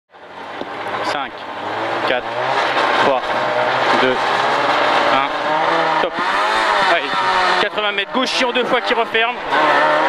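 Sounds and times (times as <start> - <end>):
car engine running: 0.1 - 10.0.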